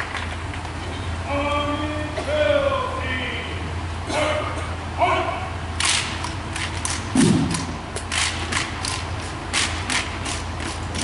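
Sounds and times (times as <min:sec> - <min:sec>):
rifles slapping and clicking: 0:05.8 - 0:11.0
heavy thud: 0:07.2 - 0:07.8.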